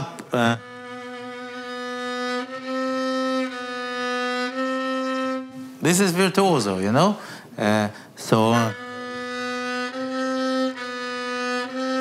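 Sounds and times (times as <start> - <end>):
bowed violin sustained note: 0.0 - 6.8, 8.3 - 12.0.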